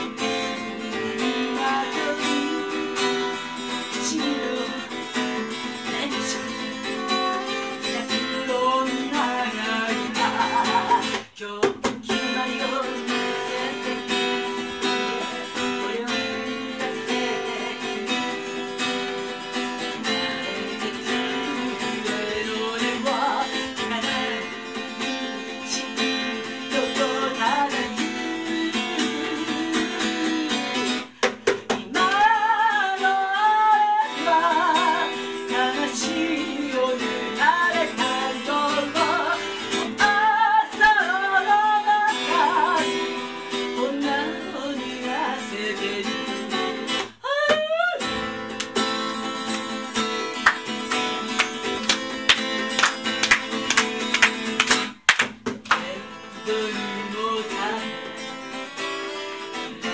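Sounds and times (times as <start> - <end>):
woman singing: 0.0 - 48.4, 55.7 - 58.6
acoustic guitar strummed and picked: 0.0 - 59.9.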